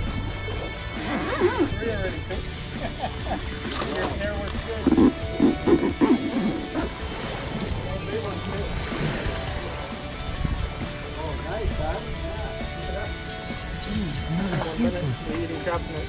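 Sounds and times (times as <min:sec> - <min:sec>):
background music: 0:00.0 - 0:16.0.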